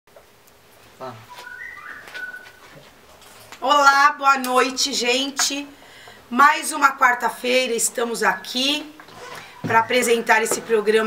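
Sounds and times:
high whistle-like tones: 0:01.2 - 0:02.7.

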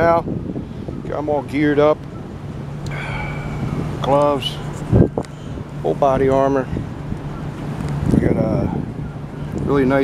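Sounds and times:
traffic hum and rumble: 0:00.0 - 0:10.0.

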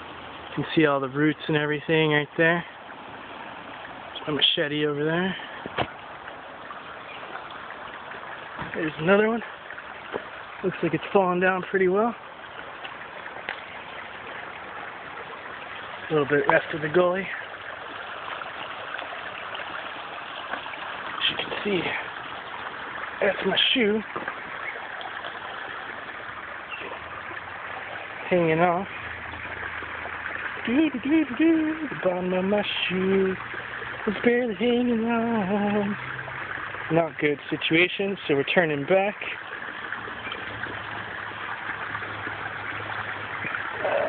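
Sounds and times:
stream water rushing: 0:00.0 - 0:44.0.

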